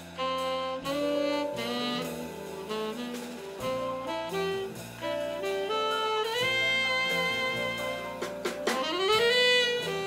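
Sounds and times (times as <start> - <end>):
big band jazz: 0.0 - 10.0
saxophone line: 0.0 - 10.0.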